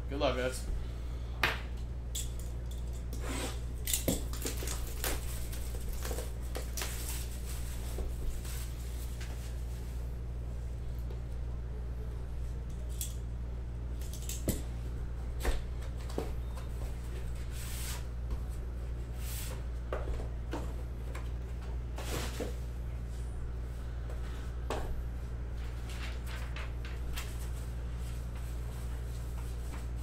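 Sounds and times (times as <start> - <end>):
low electrical hum: 0.0 - 30.0
cardboard and paper rustling: 4.3 - 10.0, 25.6 - 30.0.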